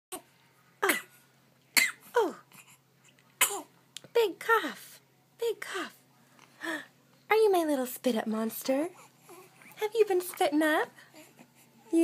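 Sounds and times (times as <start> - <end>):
baby coughing: 0.8 - 1.2, 1.8 - 2.4, 3.4 - 3.7.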